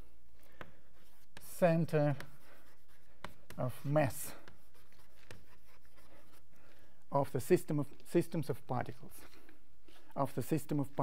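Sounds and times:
chalk tapping and scratching: 0:00.4 - 0:06.8.

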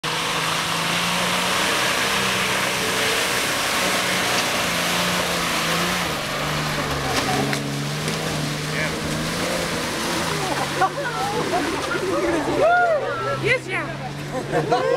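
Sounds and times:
engine working hard: 0:00.0 - 0:14.9
tyres churning mud: 0:00.0 - 0:14.9.

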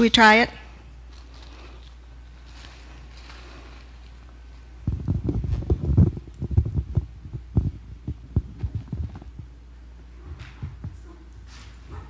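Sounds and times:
microphone handling thumps: 0:04.8 - 0:09.6.

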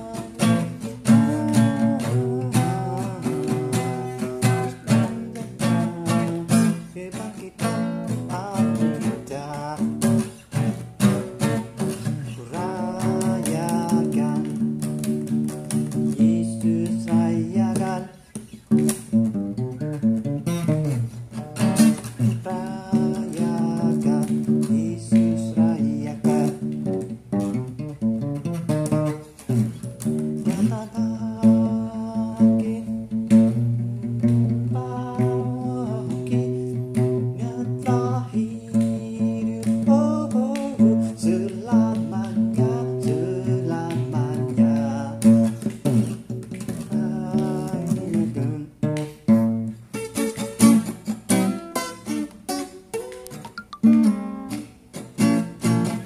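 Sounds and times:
acoustic guitar strummed in chords: 0:00.0 - 0:56.0.

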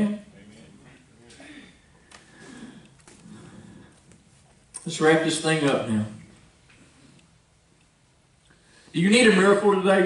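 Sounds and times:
man's amplified speech: 0:00.0 - 0:01.7, 0:04.8 - 0:06.3, 0:09.0 - 0:10.0.

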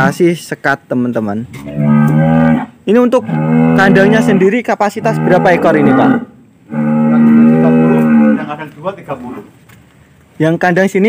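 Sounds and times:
cow mooing: 0:01.6 - 0:08.6.

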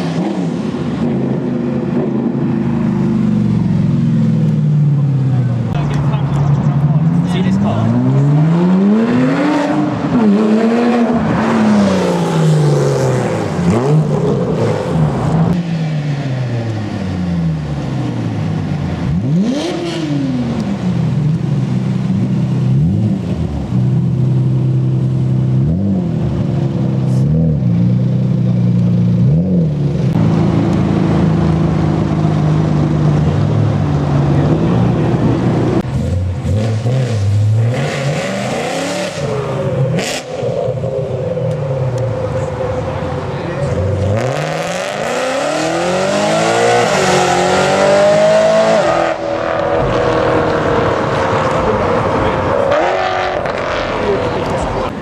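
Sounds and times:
car engines revving and accelerating: 0:00.0 - 0:55.0.

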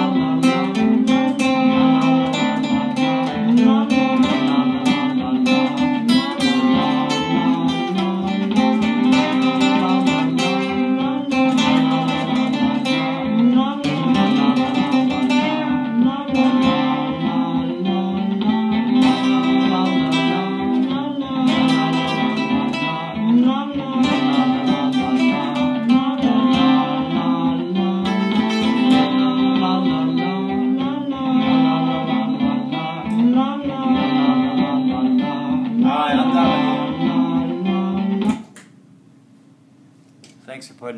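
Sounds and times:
looped guitar jam: 0:00.0 - 0:38.7.

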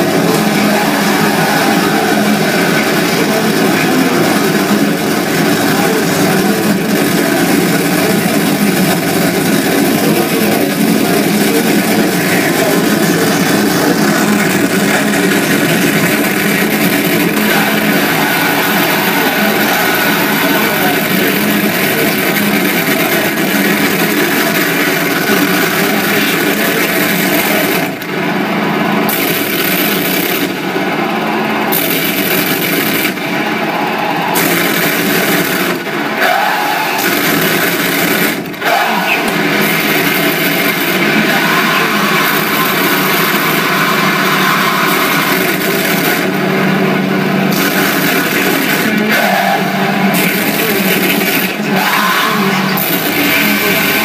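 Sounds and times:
harsh distorted noise music: 0:00.0 - 0:54.0.

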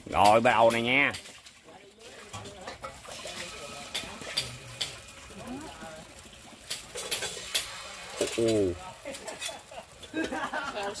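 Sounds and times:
batter sizzling in pan: 0:00.0 - 0:11.0
ladle clinking: 0:00.0 - 0:11.0
batter pouring: 0:00.3 - 0:11.0.

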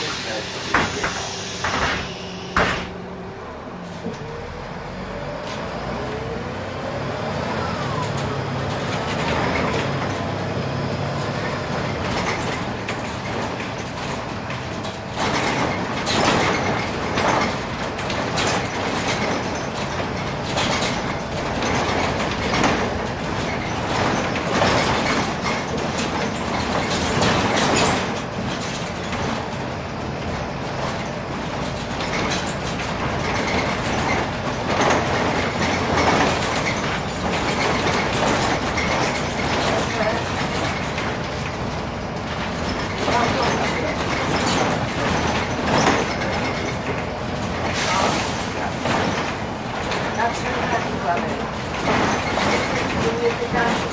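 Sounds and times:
bus engine and road noise: 0:00.0 - 0:53.9
body knocks and rattles: 0:11.2 - 0:53.9.

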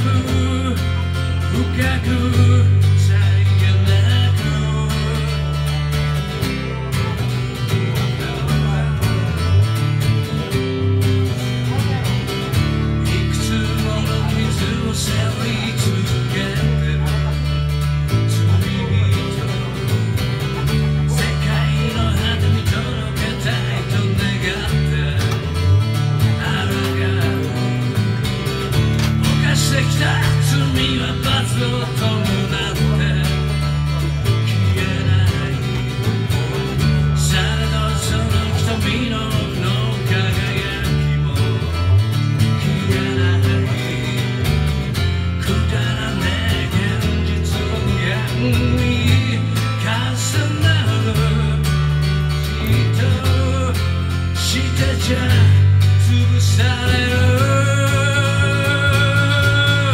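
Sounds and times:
acoustic guitar strummed: 0:00.0 - 0:59.9
bass guitar walking line: 0:00.0 - 0:59.9.

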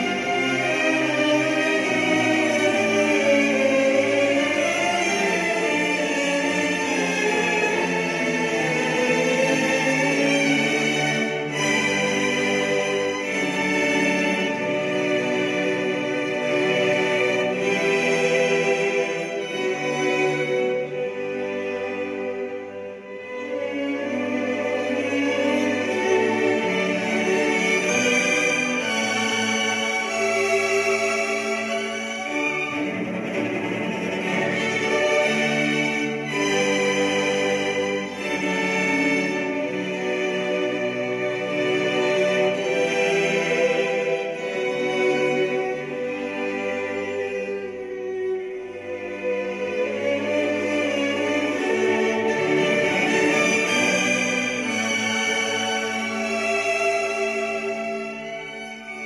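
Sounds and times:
slow classical music: 0:00.0 - 0:59.0
slow orchestral string chords: 0:00.0 - 0:59.0.

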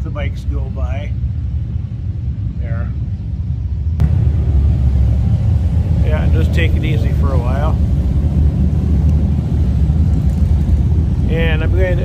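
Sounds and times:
motorcycle engines rumbling past: 0:04.0 - 0:12.0.

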